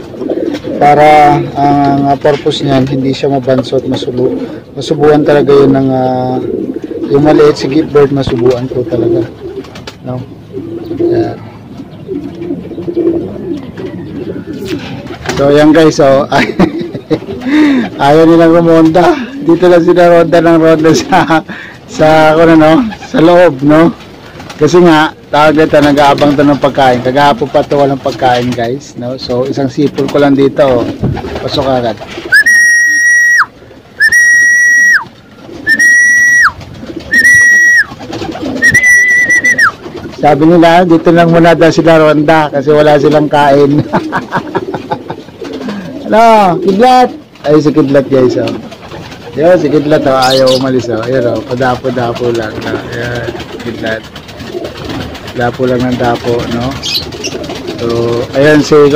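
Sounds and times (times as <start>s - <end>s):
pigeons cooing: 0.0s - 58.9s
long whistle calls: 32.3s - 37.9s, 38.6s - 39.8s.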